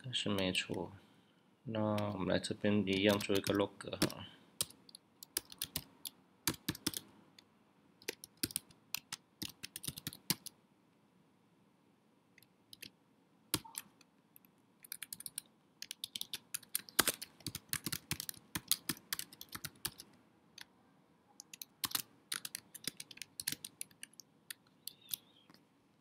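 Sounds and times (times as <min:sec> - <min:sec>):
typing on computer keyboard: 0:02.9 - 0:07.1, 0:08.0 - 0:10.6, 0:14.8 - 0:20.1, 0:21.4 - 0:25.2.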